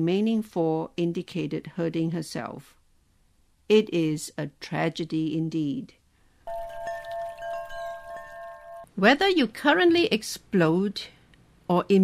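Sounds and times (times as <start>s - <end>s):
bell-like chime chord: 6.5s - 8.9s
soft chime strikes: 6.5s - 8.9s.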